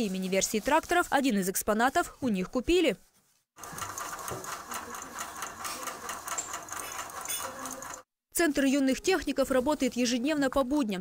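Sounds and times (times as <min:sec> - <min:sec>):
small machine clattering: 0:03.6 - 0:08.0.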